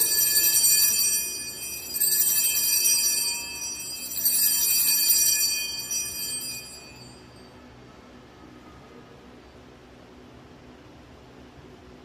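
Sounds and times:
altar bells jingling: 0.0 - 7.5.

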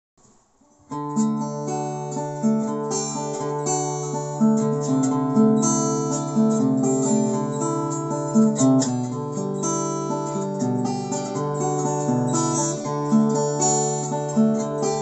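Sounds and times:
acoustic guitar riff: 0.6 - 15.0.

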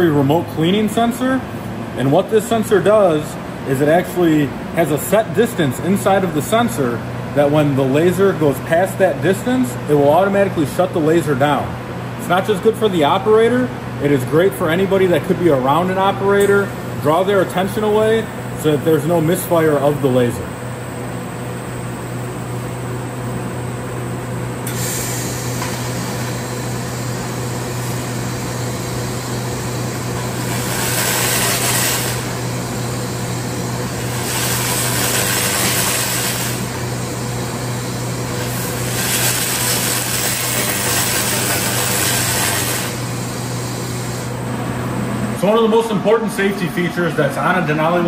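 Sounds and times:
machine humming: 0.0 - 48.0
laser hissing and crackling: 30.4 - 32.4, 34.1 - 36.7, 38.4 - 43.1.

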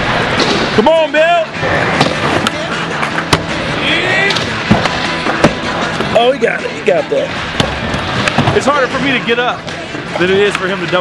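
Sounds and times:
skateboard wheels rolling: 0.0 - 6.6, 7.5 - 10.8
skateboard clacks and landing: 1.9 - 3.6.

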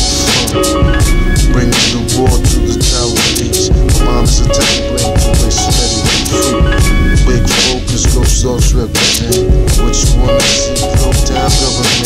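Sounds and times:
man rapping over a drum beat: 0.0 - 12.0.

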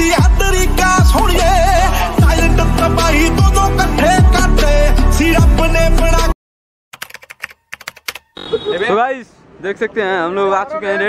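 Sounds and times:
man talking: 8.6 - 11.0.

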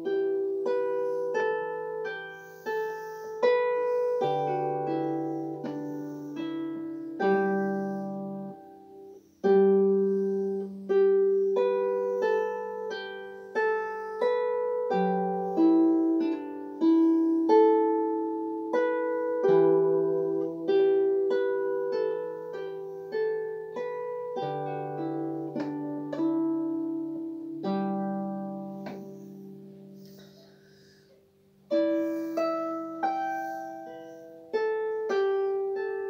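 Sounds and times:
solo harp playing: 0.0 - 36.0.

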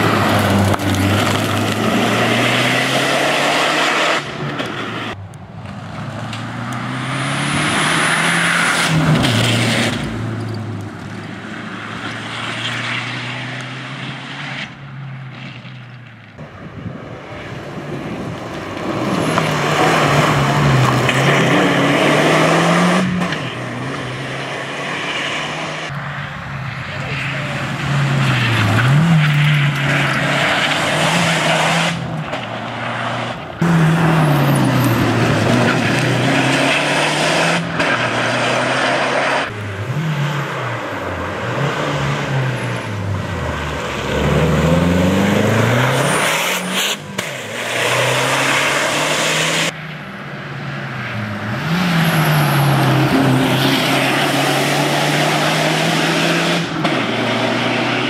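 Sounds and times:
rally car engine revving: 0.0 - 14.8, 17.8 - 50.0, 50.8 - 58.0.

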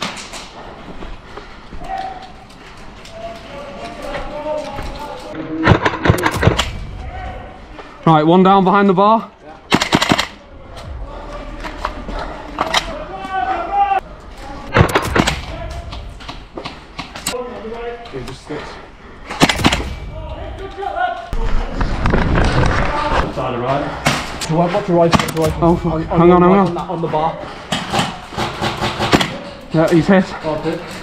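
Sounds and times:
indistinct voices calling out: 10.4 - 16.2
airsoft gunshots: 19.4 - 20.0.

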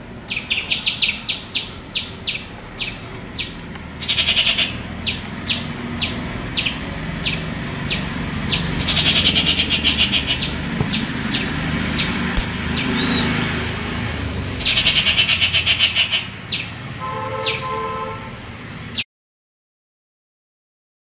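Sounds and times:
bird chip notes: 0.3 - 13.6
bird rattling chatter: 6.0 - 13.4.

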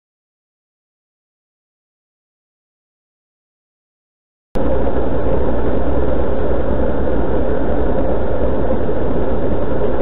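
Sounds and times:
rolling road noise: 4.6 - 10.0.

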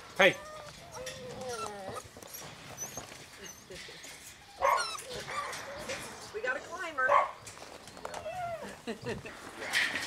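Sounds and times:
puppies whining: 0.2 - 6.0, 7.8 - 9.2.

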